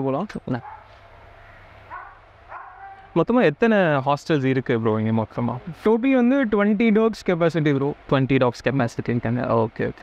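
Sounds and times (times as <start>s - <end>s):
dog barking faintly: 0.6s - 3.2s.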